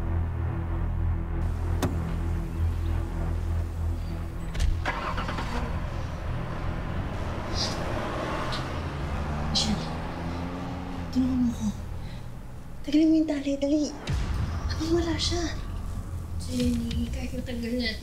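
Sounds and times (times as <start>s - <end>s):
low music drone: 0.0s - 18.0s
truck engine starting: 1.3s - 14.3s.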